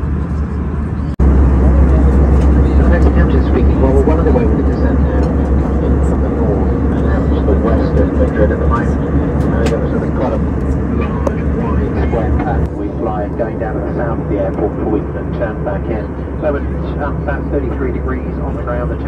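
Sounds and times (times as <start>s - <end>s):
airplane cabin drone: 0.0s - 19.0s
indistinct voices: 0.8s - 19.0s.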